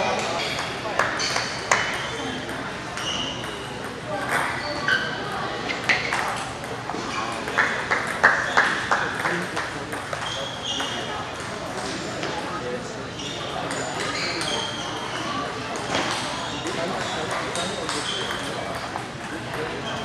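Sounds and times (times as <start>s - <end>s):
background talk in hall: 0.0s - 20.0s.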